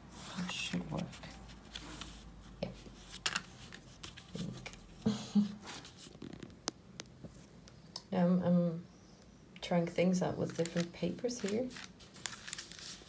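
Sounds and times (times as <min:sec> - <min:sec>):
card stock rustling and scraping: 0:00.1 - 0:05.0, 0:05.6 - 0:06.6, 0:10.4 - 0:13.0.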